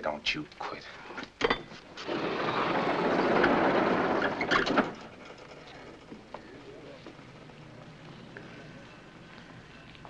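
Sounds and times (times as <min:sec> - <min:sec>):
sliding door rumbling open: 0:01.9 - 0:06.1.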